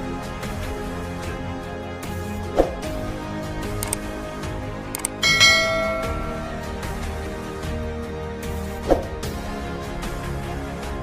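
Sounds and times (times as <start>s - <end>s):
background music: 0.0s - 11.0s
bright bell chime: 5.2s - 7.0s.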